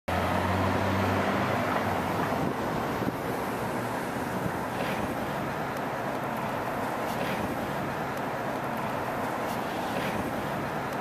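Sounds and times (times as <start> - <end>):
steady traffic noise: 0.0 - 11.0
car engine hum: 0.1 - 11.0.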